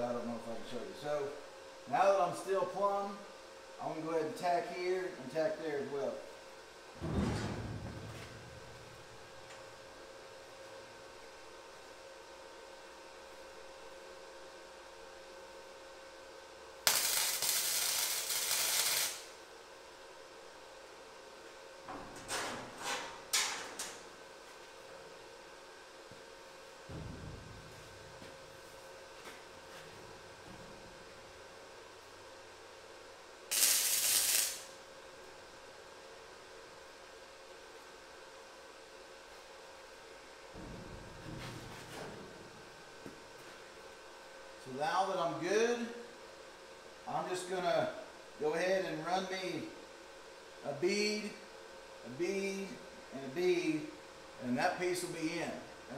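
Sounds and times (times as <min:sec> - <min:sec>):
low thump: 0:07.0 - 0:08.9, 0:26.9 - 0:28.2, 0:40.6 - 0:42.4
welder hissing: 0:16.8 - 0:19.4, 0:33.5 - 0:34.8.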